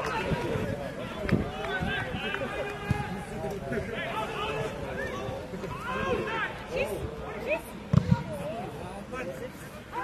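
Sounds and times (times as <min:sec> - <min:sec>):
football kicked thumps: 0:07.9 - 0:08.2.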